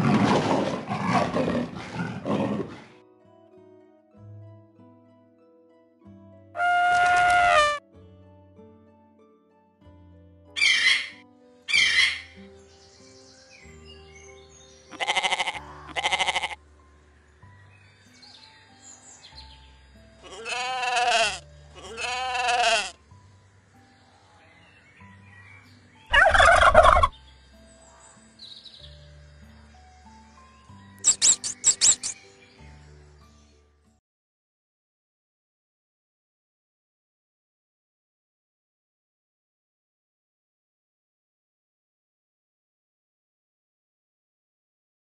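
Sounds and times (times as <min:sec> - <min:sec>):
soft background music: 0:00.0 - 0:34.0
animal calls: 0:06.6 - 0:07.8, 0:10.6 - 0:12.4, 0:14.9 - 0:16.6, 0:20.2 - 0:23.0, 0:26.1 - 0:27.1, 0:31.0 - 0:32.2
sheep bleating: 0:14.9 - 0:16.6, 0:20.2 - 0:23.0
high mouse squeaks: 0:31.0 - 0:32.2.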